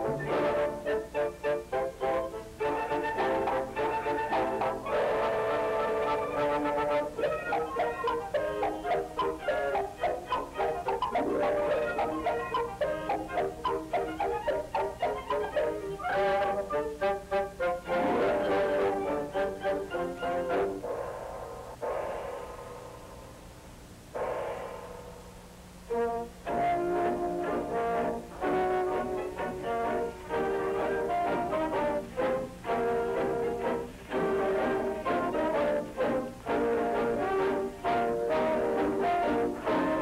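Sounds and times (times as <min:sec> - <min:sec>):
orchestra playing brassy dance music: 0:00.0 - 0:22.0, 0:25.8 - 0:40.0
low steady hum: 0:00.0 - 0:40.0.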